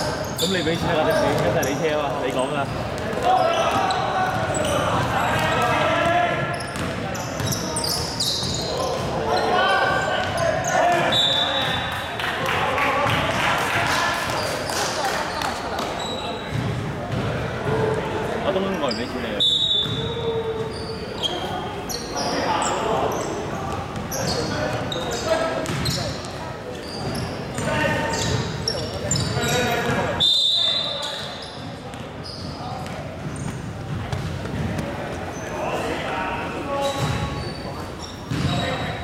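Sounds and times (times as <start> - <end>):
sneakers squeaking: 0.0 - 12.1, 13.0 - 39.0
basketball bouncing on court: 1.2 - 2.0, 2.8 - 7.6, 15.8 - 18.0, 23.8 - 30.1, 31.6 - 35.0, 36.9 - 37.4, 38.2 - 38.9.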